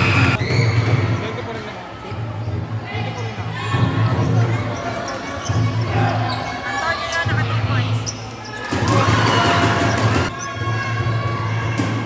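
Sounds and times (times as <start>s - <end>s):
sneaker squeaks: 0.0s - 11.0s
voices of players and spectators: 0.0s - 12.0s.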